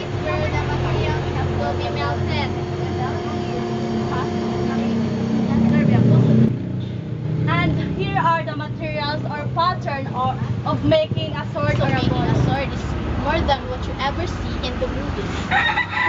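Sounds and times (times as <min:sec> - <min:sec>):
engine humming: 0:00.0 - 0:16.0.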